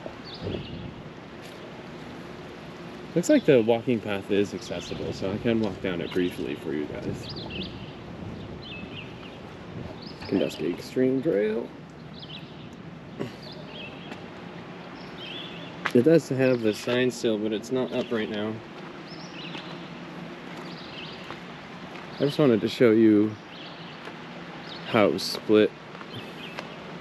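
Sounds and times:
low background hum: 0:00.0 - 0:27.0
steady background hiss: 0:00.0 - 0:27.0
small bird chirping: 0:00.1 - 0:01.7, 0:05.9 - 0:14.2, 0:15.0 - 0:16.8, 0:17.8 - 0:21.4.

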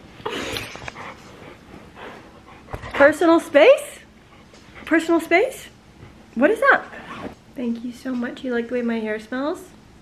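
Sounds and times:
dog panting: 0:00.8 - 0:03.5.

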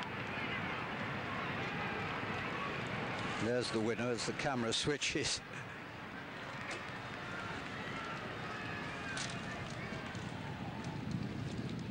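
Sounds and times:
faint distant voices: 0:00.0 - 0:11.2
noisy broadcast background: 0:00.0 - 0:11.9.

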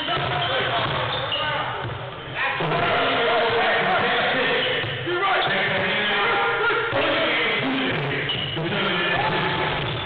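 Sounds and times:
voices echoing in hall: 0:00.0 - 0:10.0.

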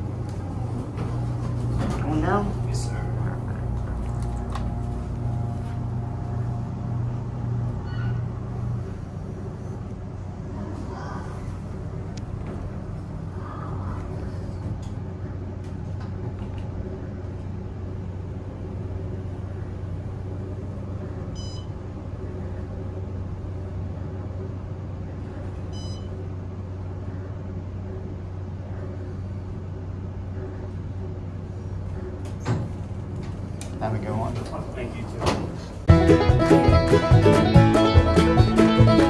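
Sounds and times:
elevator hum and rumble: 0:00.0 - 0:39.0.

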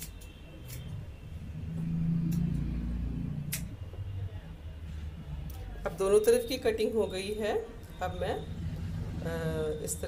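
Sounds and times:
scissors snipping wet hair: 0:03.5 - 0:03.7.

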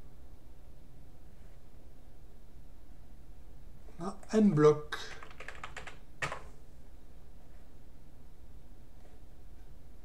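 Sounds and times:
computer keyboard typing: 0:05.1 - 0:06.5.

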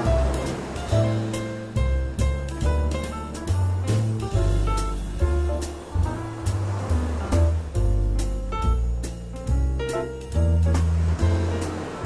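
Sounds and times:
ocean surf on beach: 0:00.0 - 0:01.8, 0:05.6 - 0:07.7, 0:10.7 - 0:12.0
instrumental jazz: 0:00.0 - 0:12.0.

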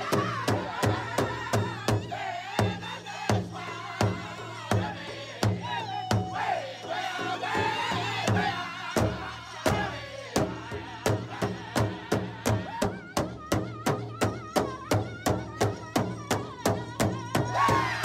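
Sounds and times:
drum steady beat: 0:00.0 - 0:18.0
high wavering singing voices: 0:03.1 - 0:15.1.

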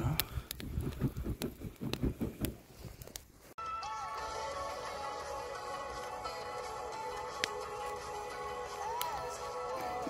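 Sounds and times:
campfire crackling and popping: 0:00.0 - 0:10.0
background music: 0:03.6 - 0:10.0.

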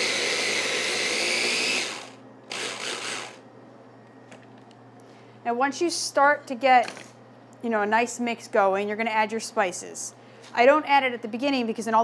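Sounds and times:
food processor whining: 0:00.0 - 0:03.4.

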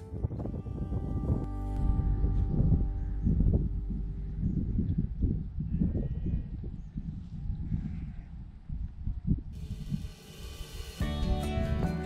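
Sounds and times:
wind rumbling on microphone: 0:00.0 - 0:11.2.

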